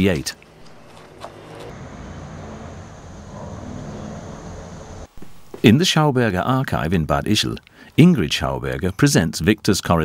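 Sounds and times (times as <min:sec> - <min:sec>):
low background rumble: 0:00.4 - 0:05.5.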